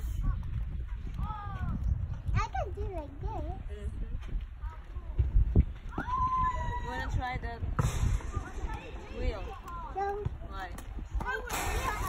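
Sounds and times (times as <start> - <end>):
low rumble: 3.7 - 11.2.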